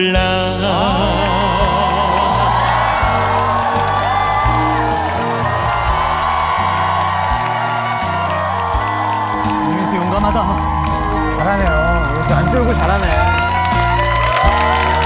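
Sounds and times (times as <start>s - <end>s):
band playing a ballad: 0.0s - 15.0s.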